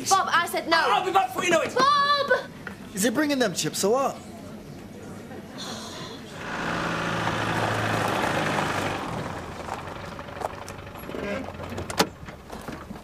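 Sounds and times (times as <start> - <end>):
car engine running: 6.4 - 13.0
tyres on gravel: 6.4 - 13.0.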